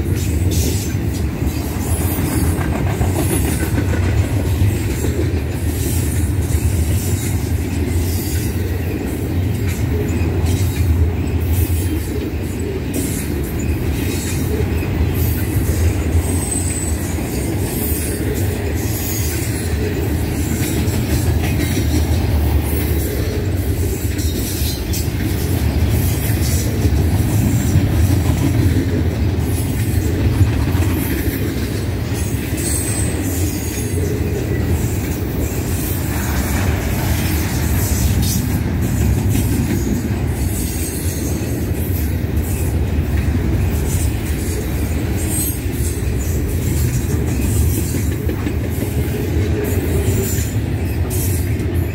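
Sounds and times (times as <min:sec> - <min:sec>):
train wheels rumbling on rail: 0:00.0 - 0:51.9.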